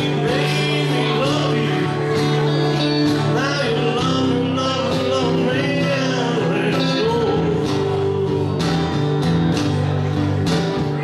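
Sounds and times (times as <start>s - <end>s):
person singing: 0.0s - 10.0s
acoustic guitars playing: 0.0s - 11.0s.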